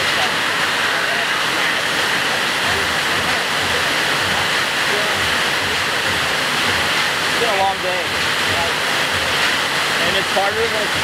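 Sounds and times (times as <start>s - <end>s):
rushing water: 0.0s - 11.0s.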